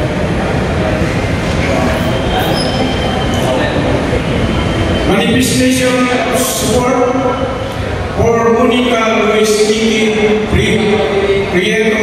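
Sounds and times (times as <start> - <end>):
loud steady rumbling: 0.0 - 12.0.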